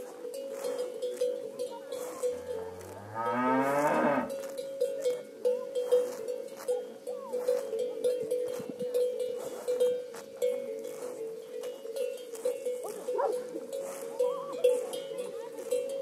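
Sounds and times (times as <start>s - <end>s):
cowbell clanking: 0.0s - 16.0s
cow mooing: 2.2s - 4.3s.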